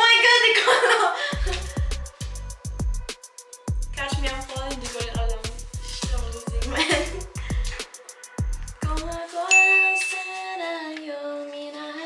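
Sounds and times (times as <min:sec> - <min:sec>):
hip-hop beat with booming bass: 0:01.3 - 0:09.2
bell-like ding: 0:09.5 - 0:10.6.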